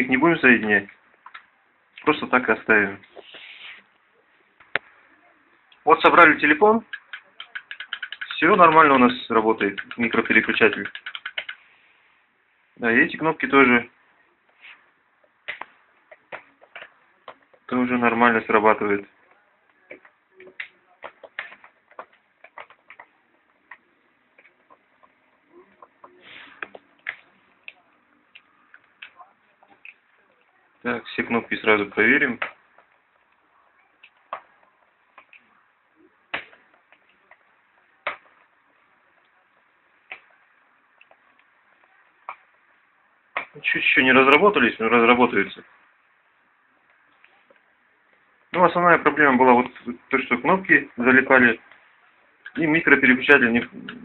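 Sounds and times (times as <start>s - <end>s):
telephone keypad buttons clicking: 6.9s - 8.4s, 10.7s - 11.6s.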